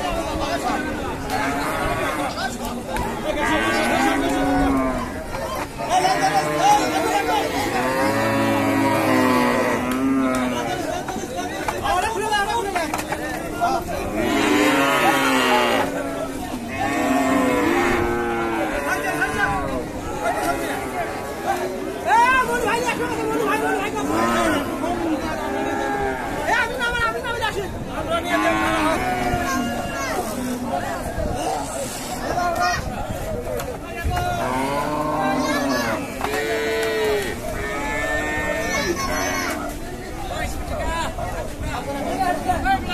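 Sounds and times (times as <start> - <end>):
cow mooing: 3.4 - 5.1, 6.1 - 10.7, 14.2 - 15.9.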